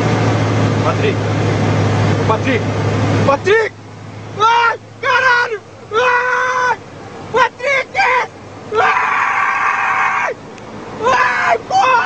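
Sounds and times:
person screaming: 4.4 - 6.8, 7.4 - 10.4, 11.0 - 12.0.

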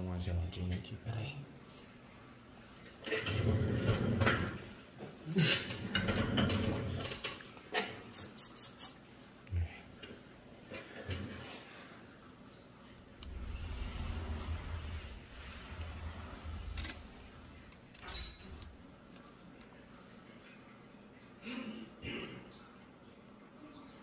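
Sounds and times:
low rustling: 12.8 - 19.2.

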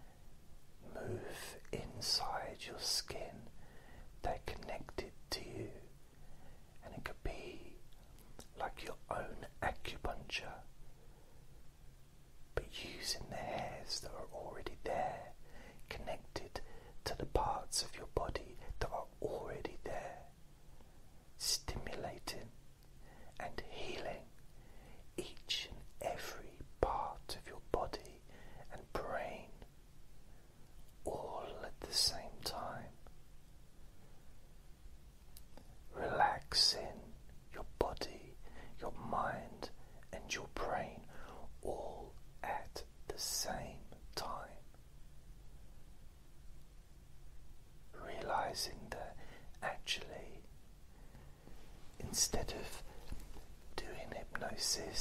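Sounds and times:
person whispering: 0.8 - 5.9, 6.8 - 10.7, 12.6 - 20.3, 21.4 - 24.4, 25.0 - 29.7, 31.0 - 33.1, 35.4 - 44.8, 47.9 - 50.5, 51.5 - 55.0.

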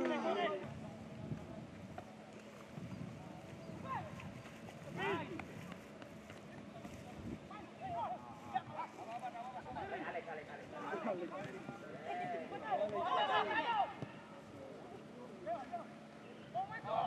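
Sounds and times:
distant players shouting: 3.6 - 6.8, 7.4 - 17.0.

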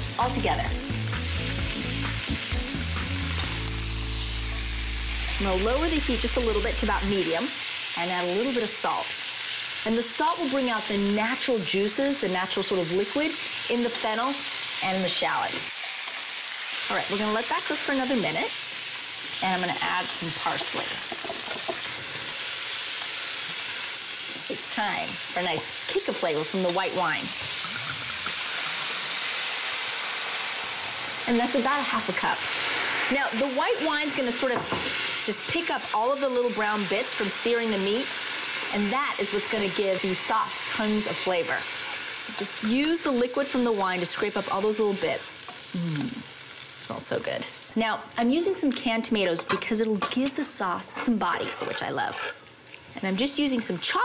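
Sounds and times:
vegetables sizzling in oil: 0.0 - 51.4, 52.0 - 54.0.

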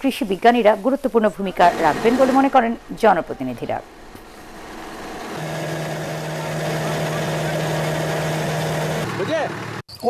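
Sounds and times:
diesel engine humming: 0.0 - 9.9.

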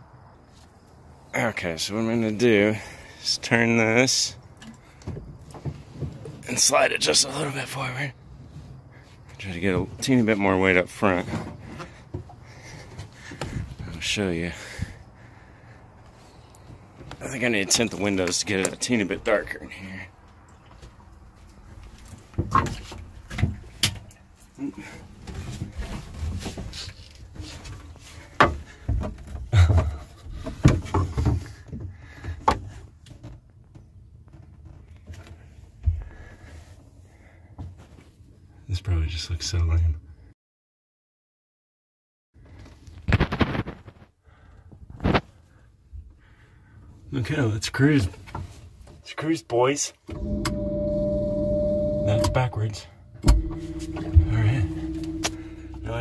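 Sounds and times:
knocks and thumps in wooden boat: 22.3 - 24.1, 27.5 - 35.2.

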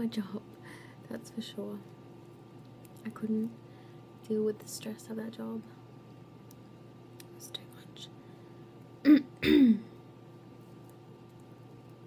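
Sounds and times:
woman clearing her throat: 9.1 - 9.9.

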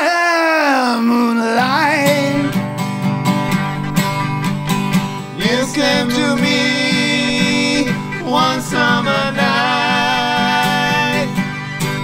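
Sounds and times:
two men singing a duet: 0.0 - 2.6, 5.3 - 11.6
acoustic guitar strumming: 1.5 - 12.0.

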